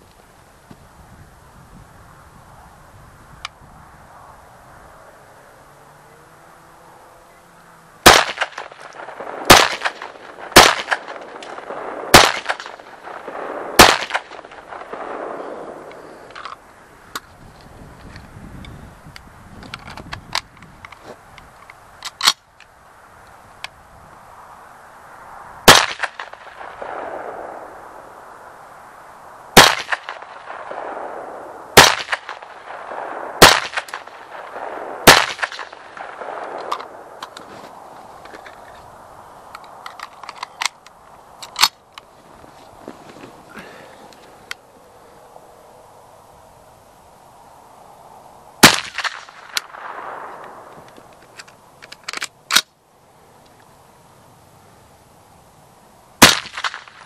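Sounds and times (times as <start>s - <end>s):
rifle shots: 8.0s - 16.3s, 25.6s - 27.8s, 29.6s - 37.2s, 48.6s - 50.7s, 56.2s - 57.0s
rifle handling clicks: 19.6s - 22.7s, 36.4s - 37.5s, 39.5s - 42.1s, 48.8s - 52.8s.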